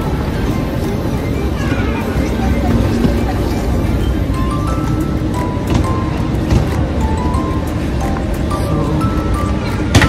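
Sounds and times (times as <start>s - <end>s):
background music with heavy bass: 0.0s - 10.0s.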